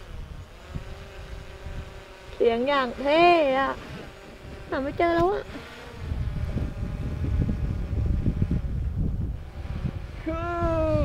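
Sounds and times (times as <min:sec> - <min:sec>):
wind buffeting microphone: 0:00.0 - 0:11.0
person calling out: 0:10.2 - 0:11.0.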